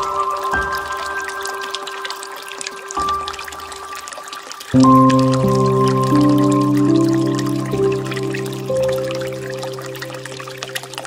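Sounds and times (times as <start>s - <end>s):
faint trickle of water: 0.0s - 11.0s
slow soft piano music: 0.0s - 11.0s.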